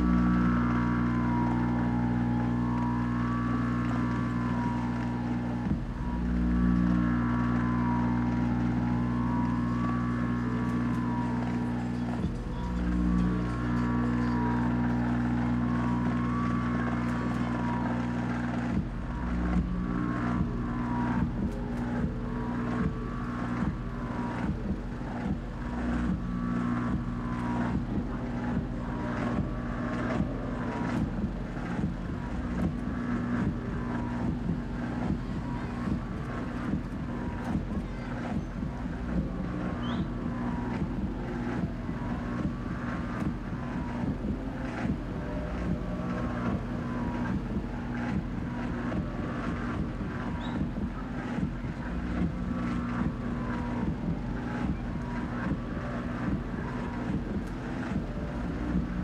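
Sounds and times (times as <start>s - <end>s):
deep synthesizer drone: 0.0s - 59.0s.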